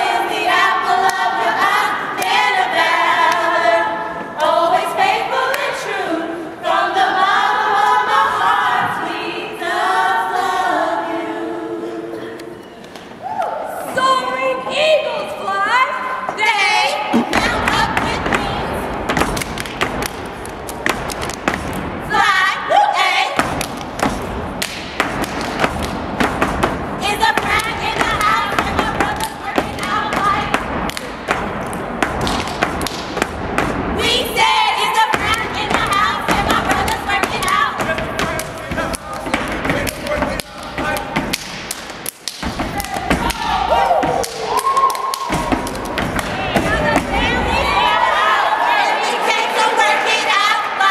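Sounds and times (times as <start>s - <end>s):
group chanting: 0.0s - 12.6s, 27.0s - 31.5s, 34.0s - 41.6s, 45.3s - 50.9s
stamping and clapping: 19.1s - 21.9s, 23.4s - 33.8s, 35.1s - 47.2s
foot stomps: 35.2s - 47.4s.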